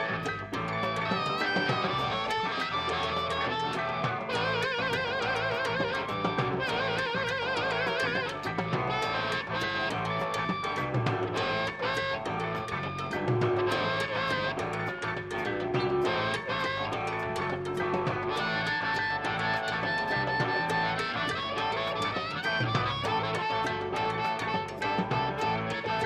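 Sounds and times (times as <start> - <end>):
drums: 0.0 - 26.0
electric guitar: 0.0 - 26.0
harmonica: 0.0 - 26.0.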